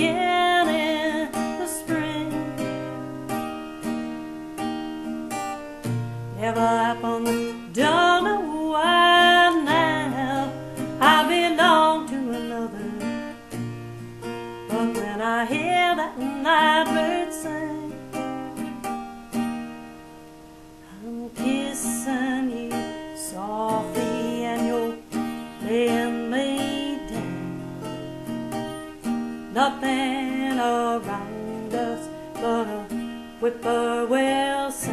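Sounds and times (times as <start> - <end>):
acoustic guitar chords strummed: 0.0 - 34.9.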